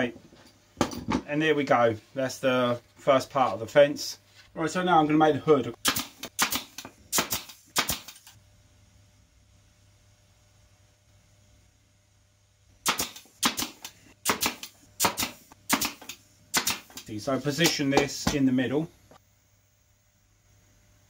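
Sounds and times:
pneumatic pin nailer firing: 0:05.8 - 0:08.4, 0:12.8 - 0:17.8.

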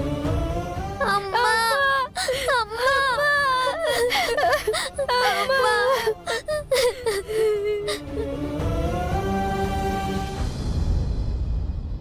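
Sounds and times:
children crying and wailing: 0:01.0 - 0:08.4.

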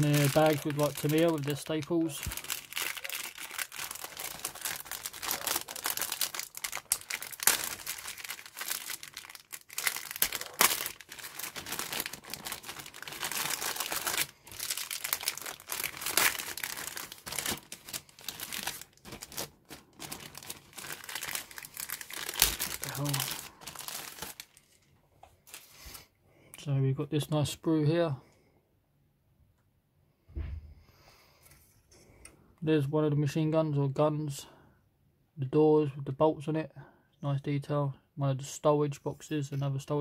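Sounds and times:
plastic bag crinkling: 0:00.0 - 0:26.0.

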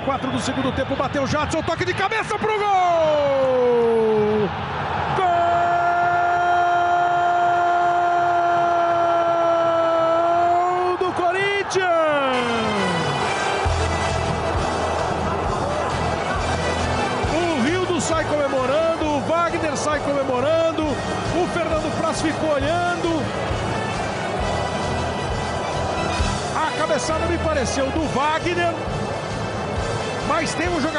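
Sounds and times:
excited commentary: 0:00.0 - 0:04.5, 0:09.1 - 0:13.2, 0:15.0 - 0:23.4, 0:26.4 - 0:28.8
stadium crowd noise: 0:00.0 - 0:30.9.

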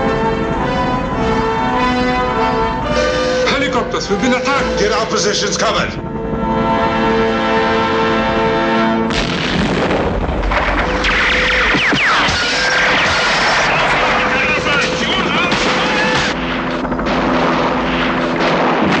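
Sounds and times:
held tone of film music: 0:00.0 - 0:09.2, 0:10.2 - 0:19.0
gunfire and explosions: 0:09.1 - 0:19.0.

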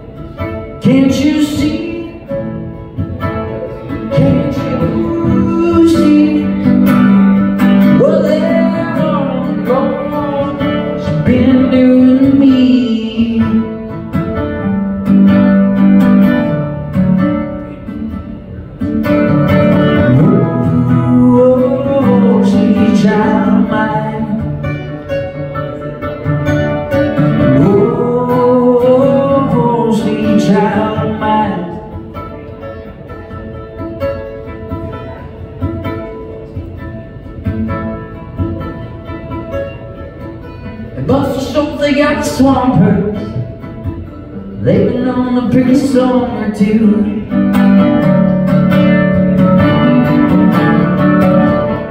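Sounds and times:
acoustic guitar: 0:00.0 - 0:51.9
man singing: 0:00.7 - 0:02.5, 0:03.9 - 0:14.0, 0:19.8 - 0:24.8, 0:27.3 - 0:32.1, 0:40.9 - 0:43.7, 0:44.5 - 0:47.6.

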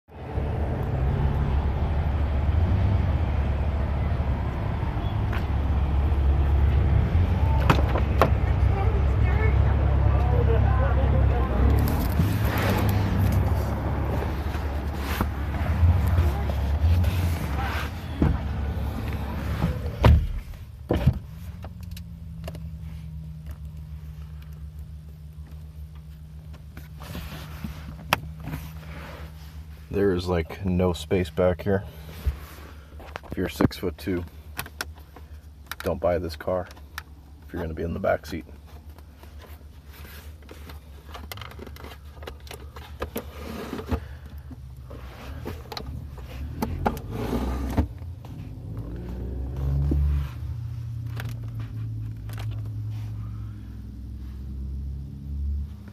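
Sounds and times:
car cabin low hum: 0:00.2 - 0:55.9.

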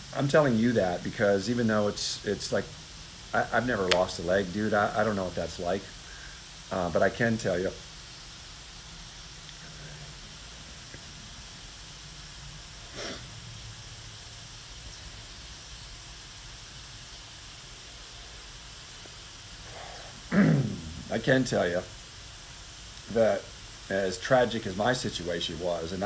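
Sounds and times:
faint background hiss: 0:00.0 - 0:26.0
soft rush of noise: 0:00.0 - 0:26.0.

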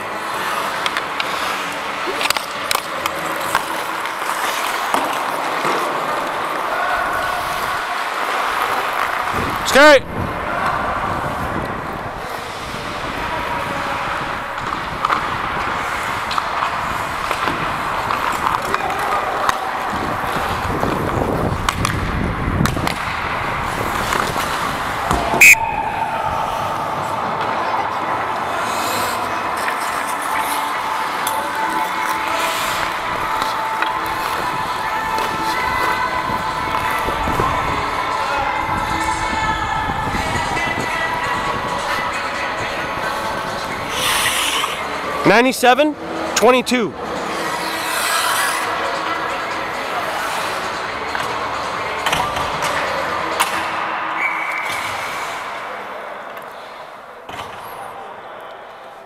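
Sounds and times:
skate blades scraping ice: 0:00.0 - 0:39.2, 0:40.1 - 0:45.3, 0:47.0 - 0:55.9
background music: 0:24.8 - 0:55.0.

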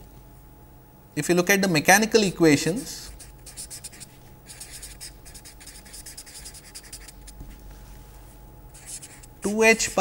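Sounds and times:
faint steady hum: 0:00.0 - 0:10.0
marker writing on paper: 0:03.2 - 0:07.5, 0:08.8 - 0:10.0.

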